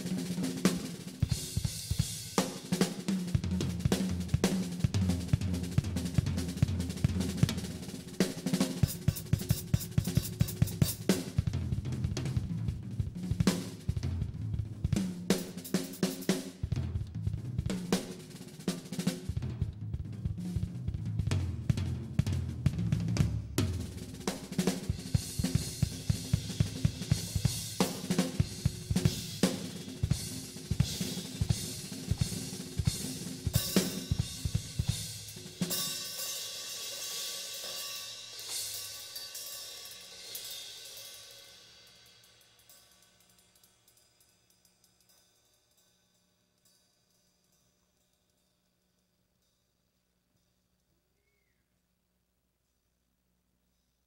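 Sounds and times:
acoustic drum solo: 0.0s - 44.1s
cymbals ringing: 8.8s - 11.2s, 32.9s - 49.8s.

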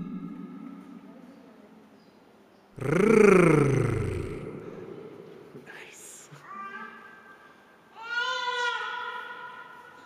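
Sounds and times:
growly drawn-out r sound: 0.0s - 0.8s, 2.8s - 5.4s.

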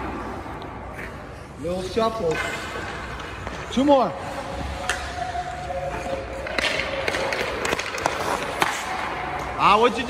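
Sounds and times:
skate blades scraping ice: 0.2s - 10.0s.

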